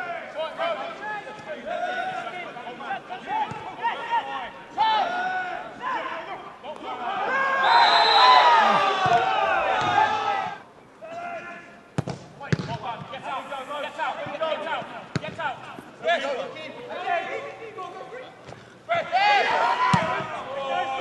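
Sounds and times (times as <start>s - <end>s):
players calling out: 0.5s - 11.8s
voices shouting: 3.8s - 11.4s, 18.9s - 21.0s.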